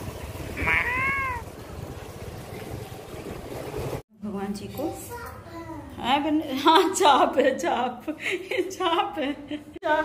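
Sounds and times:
cat meowing: 0:00.6 - 0:01.5.

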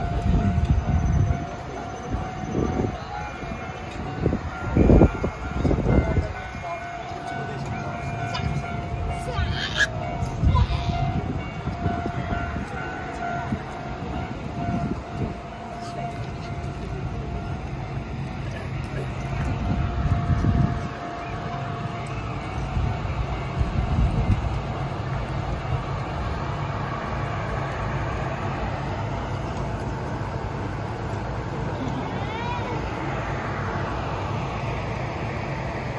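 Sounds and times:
crowd voices: 0:00.0 - 0:35.9
train wheels rumbling on tracks: 0:00.0 - 0:35.9.

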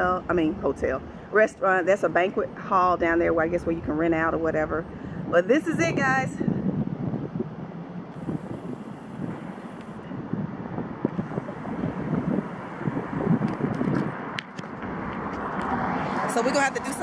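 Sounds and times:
street traffic: 0:00.0 - 0:17.0
wind rumbling on microphone: 0:00.0 - 0:17.0
sharp clicks: 0:13.4 - 0:15.7.

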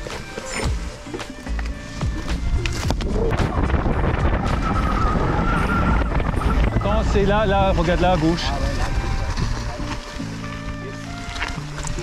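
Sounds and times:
bike rattling and clicking: 0:00.0 - 0:12.0
tyres rumbling over dirt: 0:00.0 - 0:12.0
wind on microphone: 0:01.7 - 0:10.2.

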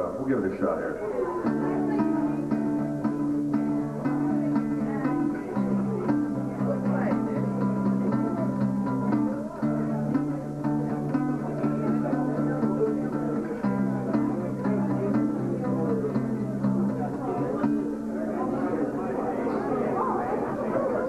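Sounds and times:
acoustic guitar strummed chords: 0:01.3 - 0:19.7.

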